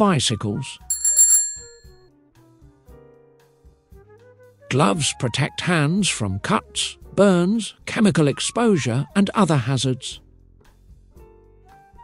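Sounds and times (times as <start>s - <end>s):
bicycle bell ringing: 0.9s - 2.0s
soft background music: 3.0s - 12.0s.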